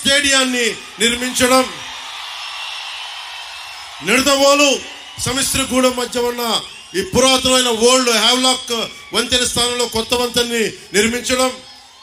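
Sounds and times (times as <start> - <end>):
speech: 0.0 - 1.8, 4.0 - 11.6.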